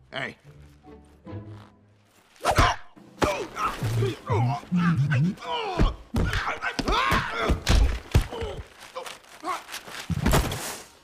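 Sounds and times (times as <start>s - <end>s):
grunts and yelps: 3.6s - 7.6s.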